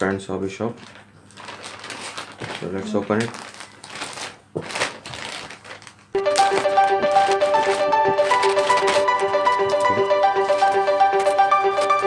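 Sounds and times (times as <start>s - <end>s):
plastic mailer bag crinkling: 0.6s - 12.0s
background music: 6.2s - 12.0s.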